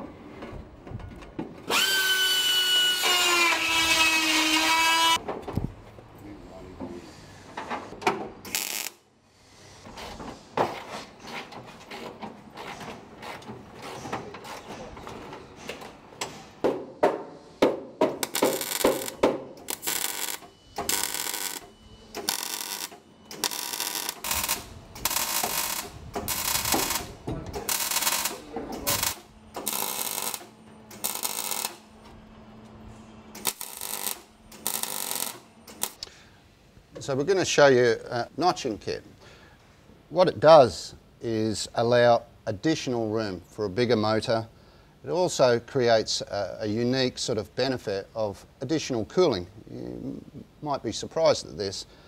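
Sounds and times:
welding on steel: 0:08.5 - 0:09.0, 0:18.2 - 0:31.9, 0:33.3 - 0:36.0.

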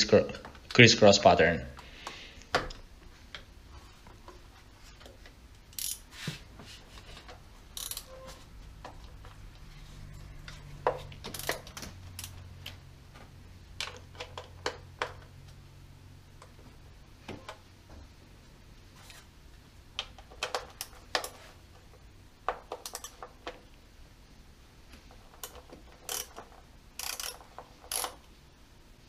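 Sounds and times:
hand ratchet turning bolts: 0:05.7 - 0:06.0, 0:07.7 - 0:08.1, 0:11.2 - 0:12.8, 0:22.6 - 0:23.6, 0:25.2 - 0:28.3.

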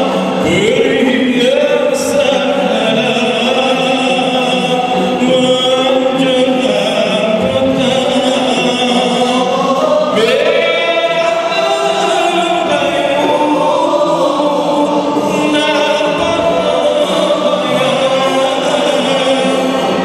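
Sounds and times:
men singing together: 0:00.0 - 0:20.0.

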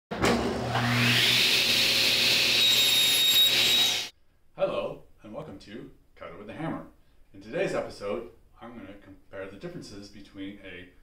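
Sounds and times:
power tool motor whining: 0:00.6 - 0:04.1.

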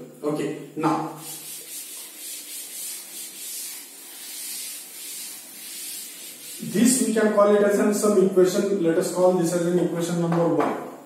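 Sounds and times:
duster scrubbing on chalkboard: 0:01.2 - 0:07.4.

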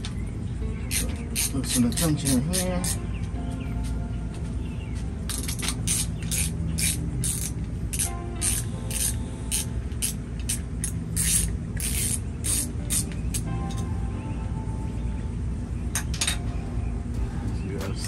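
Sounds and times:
hand ratchet clicking: 0:00.9 - 0:03.0, 0:05.3 - 0:13.8.

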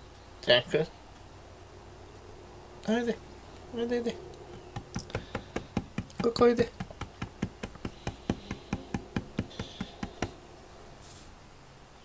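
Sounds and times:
fingertips tapping on a desk: 0:04.4 - 0:10.4.

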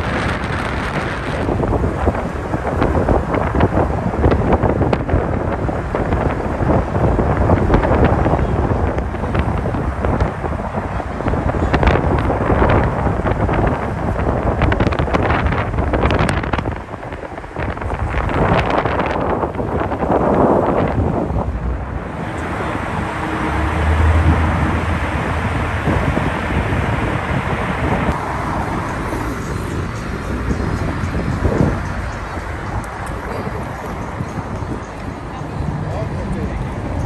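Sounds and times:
low vehicle rumble: 0:00.0 - 0:37.0
street traffic noise: 0:00.0 - 0:37.0
wind buffeting microphone: 0:00.0 - 0:37.0.

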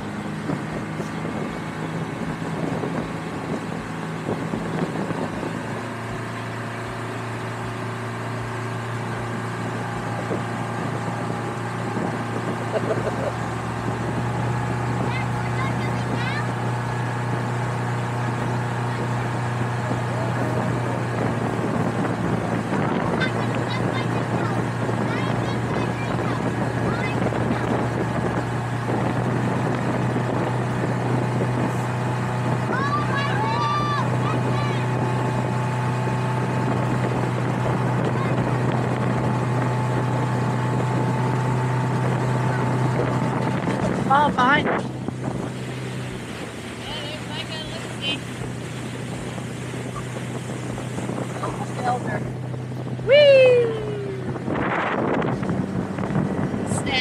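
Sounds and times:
motorboat engine drone: 0:00.0 - 0:57.0
water rushing: 0:00.0 - 0:57.0.

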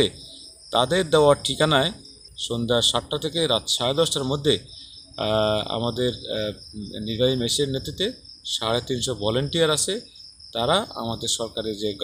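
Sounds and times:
crickets chirring: 0:00.0 - 0:12.0
man talking: 0:00.0 - 0:12.0.

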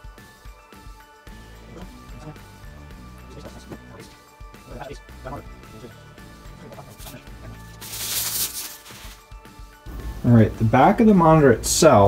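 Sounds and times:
faint background music: 0:00.0 - 0:12.0
paper rustling: 0:06.8 - 0:09.4.

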